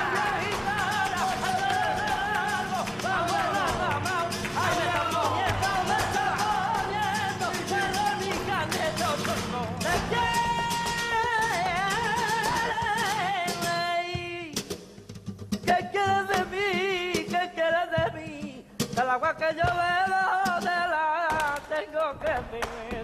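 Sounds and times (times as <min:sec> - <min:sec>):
sharp hand-claps: 0:00.0 - 0:13.9, 0:21.2 - 0:23.0
guitar: 0:00.0 - 0:23.0
person singing flamenco: 0:00.0 - 0:23.0.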